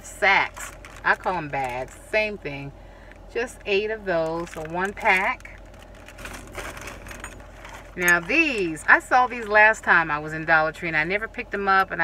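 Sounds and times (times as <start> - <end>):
plastic bag rustling and crinkling: 0.4 - 2.0, 3.7 - 9.7.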